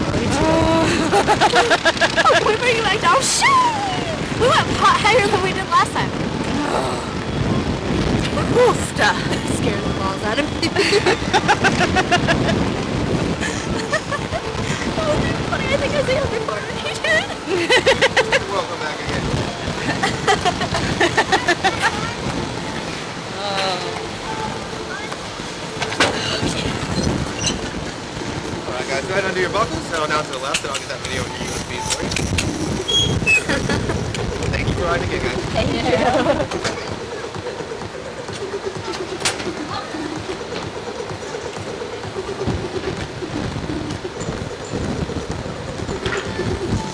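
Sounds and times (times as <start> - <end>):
wind rushing over microphone: 0.0 - 46.9
person exclaiming and laughing: 0.3 - 4.6.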